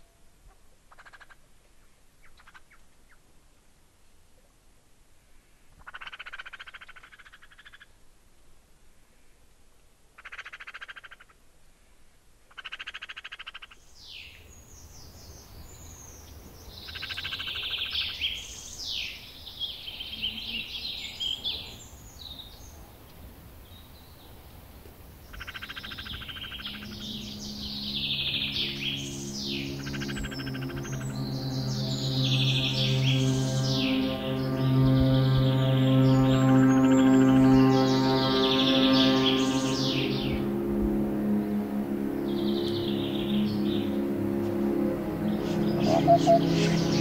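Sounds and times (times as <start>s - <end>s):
ambient music drone: 14.5s - 22.8s, 25.4s - 47.0s
birds chirping: 25.2s - 47.0s
buzzy frog-like trills: 25.4s - 35.6s, 38.3s - 47.0s.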